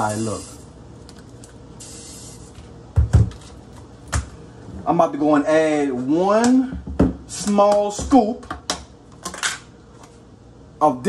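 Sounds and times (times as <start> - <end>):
plastic tubs knocking on counter: 3.0 - 3.4.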